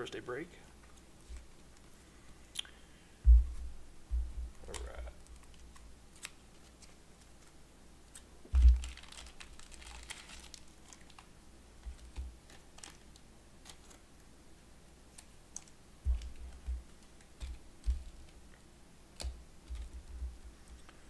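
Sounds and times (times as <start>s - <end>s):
low thumps against table: 3.3s - 4.5s
plastic card sleeves rustling: 4.5s - 14.1s
cards clicking and tapping: 15.2s - 18.4s, 19.2s - 20.2s.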